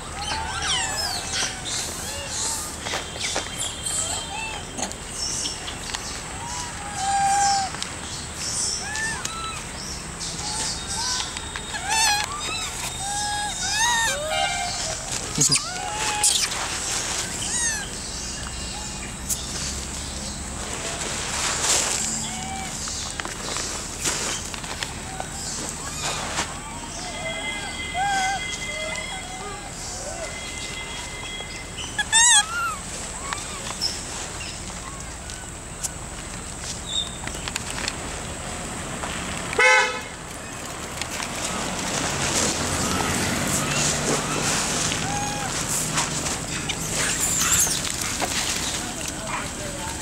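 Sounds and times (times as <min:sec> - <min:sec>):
monkeys cooing: 0:00.0 - 0:02.8, 0:03.8 - 0:05.1, 0:06.4 - 0:07.8, 0:08.6 - 0:18.0, 0:22.0 - 0:23.1, 0:24.9 - 0:30.5, 0:31.8 - 0:34.0, 0:42.8 - 0:50.0.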